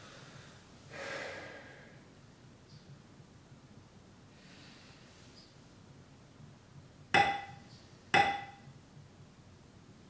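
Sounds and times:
person breathing: 0.0 - 2.1, 4.3 - 5.3.

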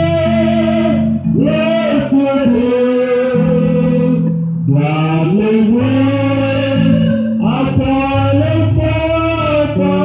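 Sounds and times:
electric bass low notes: 0.0 - 10.0
people singing a slow hymn: 0.0 - 10.0.

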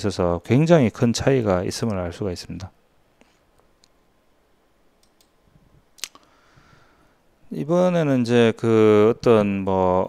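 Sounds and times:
faint clicks: 5.0 - 5.4
sharp click: 5.0 - 5.4.

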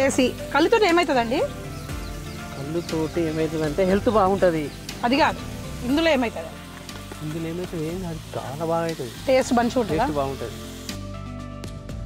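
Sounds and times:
curry sizzling and bubbling in pot: 0.0 - 11.4.

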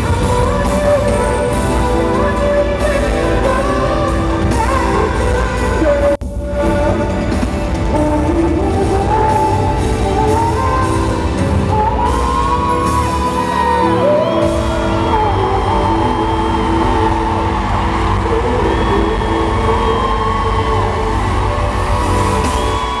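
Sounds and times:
group singing live in arena: 0.0 - 23.0.

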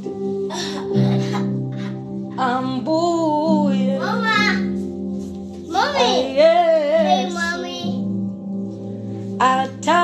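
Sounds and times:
sustained backing chord: 0.0 - 10.0
woman singing gospel: 2.4 - 4.0, 6.3 - 7.0, 9.4 - 10.0.

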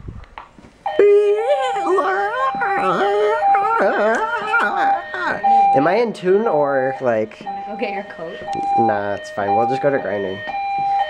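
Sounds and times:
fire alarm alert tone: 0.8 - 11.0.

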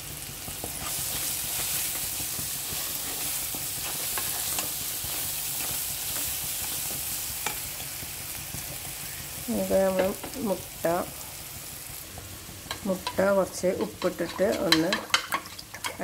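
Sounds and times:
vegetables sizzling in a frying pan: 0.0 - 16.0
spatula scraping and tapping pan: 0.5 - 7.6, 12.1 - 16.0.

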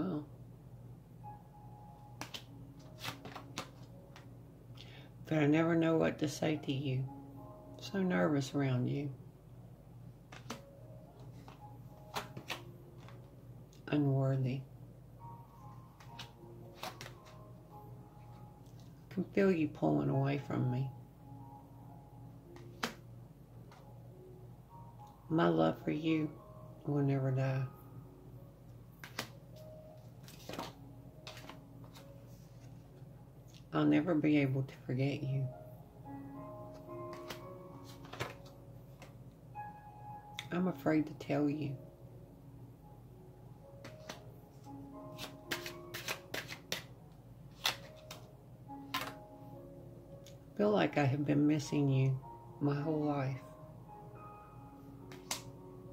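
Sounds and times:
soft background music: 0.0 - 55.9
card snapping onto pile: 2.2 - 3.9, 10.3 - 10.6, 11.5 - 13.2, 16.0 - 17.4, 22.6 - 23.0, 29.0 - 29.4, 38.0 - 38.4, 45.2 - 46.9, 47.6 - 48.2, 48.9 - 49.2, 55.1 - 55.5.

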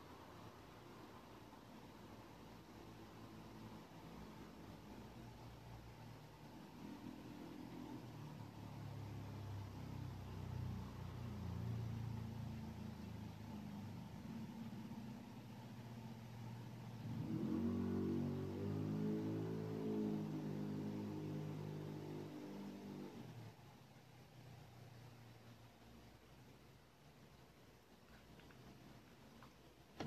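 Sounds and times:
low mechanical hum: 0.0 - 30.0.

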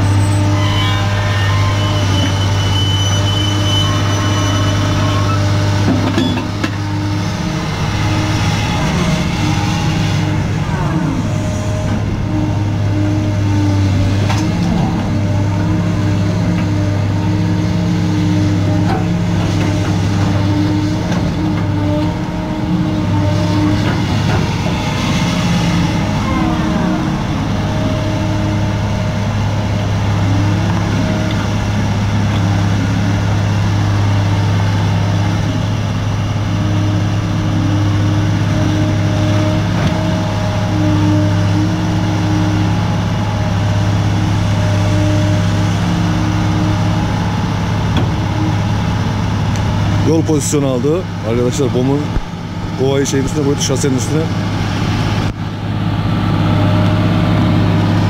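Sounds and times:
excavator diesel engine running: 0.0 - 58.0
falling whine: 22.2 - 33.4.

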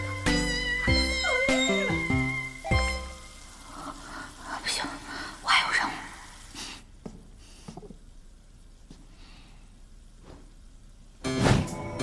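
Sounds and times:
music cue: 0.0 - 3.4, 11.2 - 12.0.

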